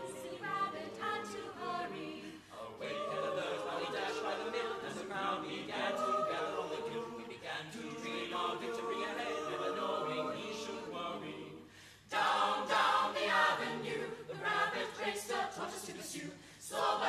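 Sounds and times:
a cappella group singing harmony: 0.0 - 17.0.

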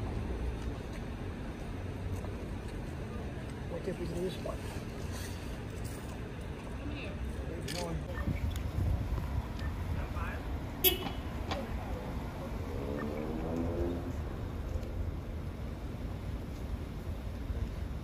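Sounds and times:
car horn toot: 10.8 - 11.3.

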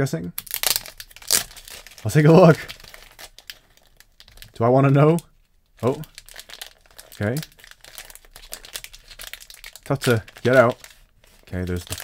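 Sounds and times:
cellophane wrap crinkling: 0.4 - 12.0.

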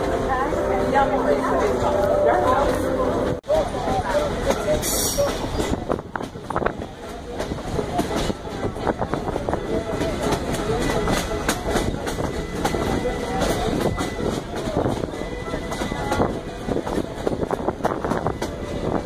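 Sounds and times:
train clicks and knocks: 0.0 - 19.0
train wheels rumbling on rails: 0.0 - 19.0.

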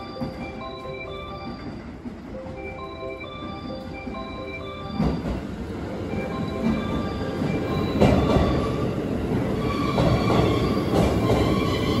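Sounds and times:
train clunks: 0.0 - 12.0
train wheels rumbling on rail: 0.0 - 12.0.

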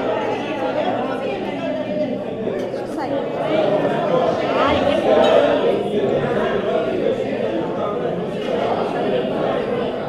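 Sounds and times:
many people chattering: 0.0 - 10.0.

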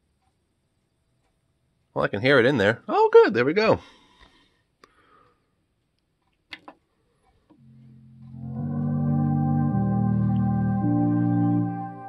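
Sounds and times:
faint clicks: 0.0 - 1.9, 4.2 - 8.4
music with slow sustained chords: 7.6 - 12.0.

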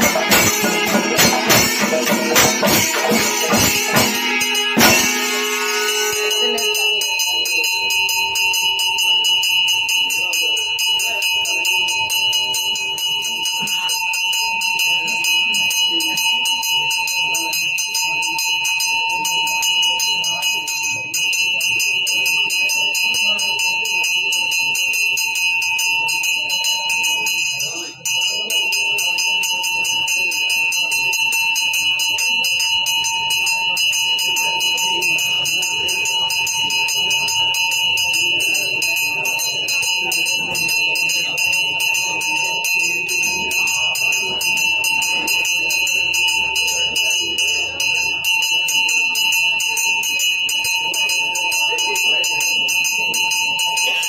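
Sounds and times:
hand bells clanging: 0.0 - 54.0.

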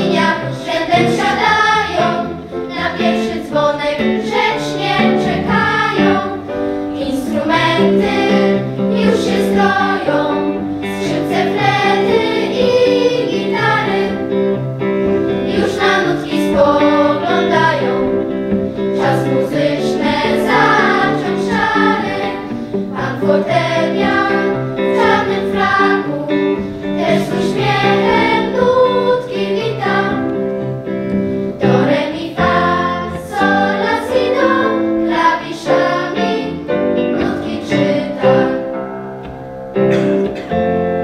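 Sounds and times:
children's choir singing: 0.0 - 30.5, 31.5 - 38.8.

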